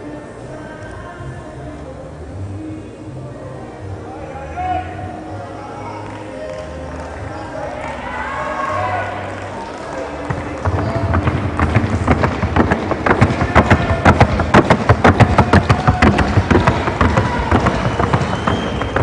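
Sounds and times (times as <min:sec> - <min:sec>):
hooves on wooden board: 0:10.3 - 0:19.0.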